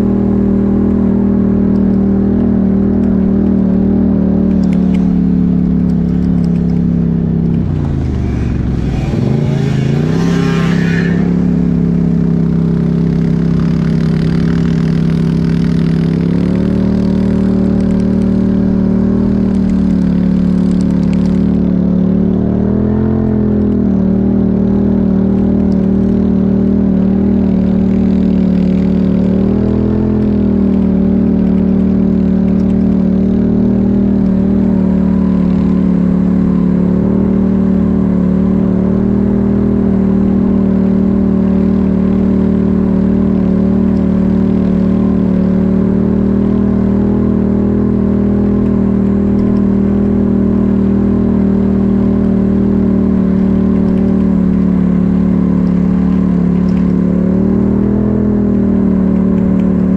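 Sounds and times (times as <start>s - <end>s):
atv engine running: 0.0s - 59.9s.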